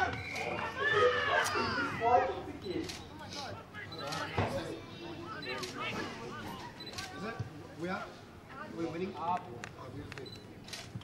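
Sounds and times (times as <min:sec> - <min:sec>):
distant shouting voices: 0:00.0 - 0:07.2.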